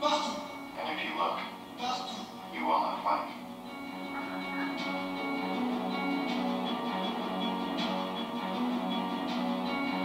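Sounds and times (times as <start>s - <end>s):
background music score: 0.0s - 10.0s.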